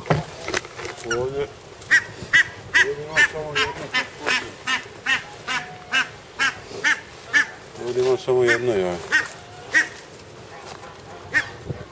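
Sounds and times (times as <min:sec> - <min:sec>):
waterfowl calling: 0:00.8 - 0:11.9.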